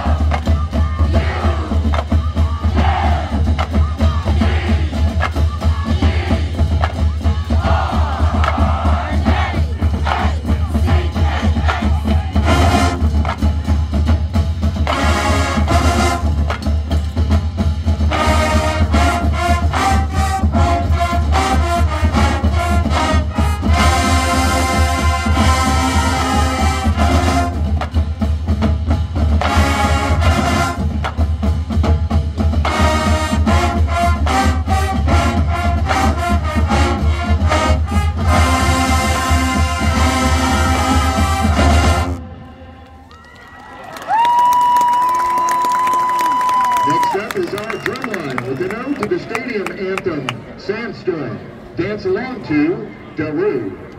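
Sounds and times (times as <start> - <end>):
drumline with bass drums: 0.0 - 42.2, 44.1 - 51.0
marching band brass: 0.0 - 43.4.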